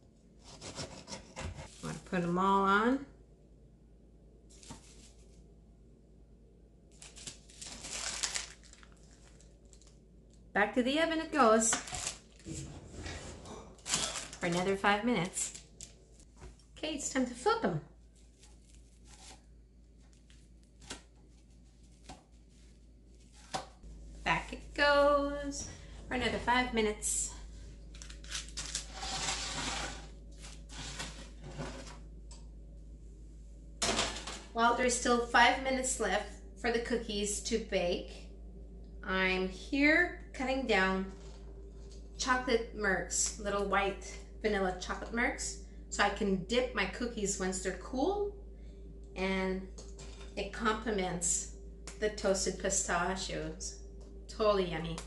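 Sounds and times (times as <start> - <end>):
parchment paper rustling: 4.5 - 5.4, 6.9 - 9.9, 11.8 - 16.6, 18.0 - 23.8, 27.9 - 32.0
metal baking sheet scraping on wood: 28.8 - 32.0
light scrapes and knocks: 30.7 - 32.0.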